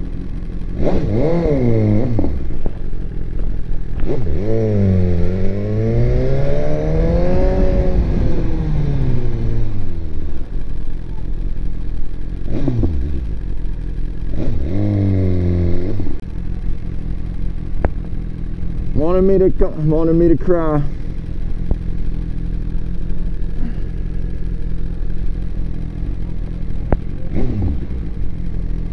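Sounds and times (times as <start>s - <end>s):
motorcycle engine pulling away: 0.0s - 28.9s
engine coughs: 23.5s - 24.0s.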